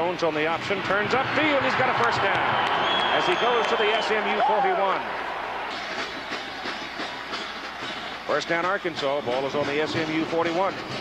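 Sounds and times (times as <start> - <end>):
stadium crowd hubbub: 0.0 - 11.0.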